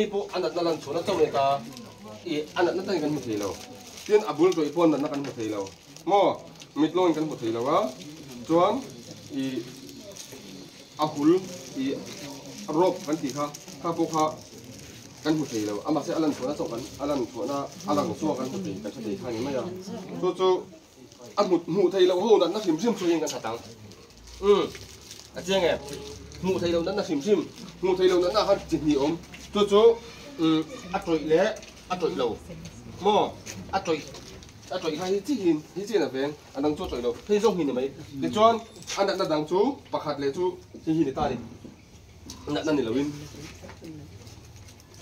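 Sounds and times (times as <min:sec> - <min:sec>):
man talking: 0:00.0 - 0:10.0, 0:11.0 - 0:14.5, 0:15.2 - 0:23.8, 0:24.4 - 0:32.4, 0:33.0 - 0:41.6, 0:42.4 - 0:43.2
background murmur: 0:00.0 - 0:45.0.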